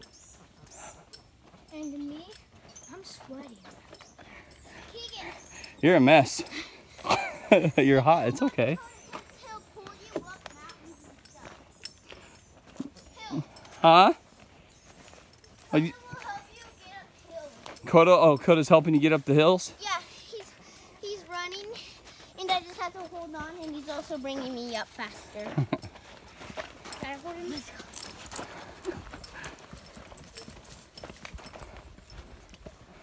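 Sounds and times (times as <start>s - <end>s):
footsteps on dirt trail: 0.0s - 33.0s.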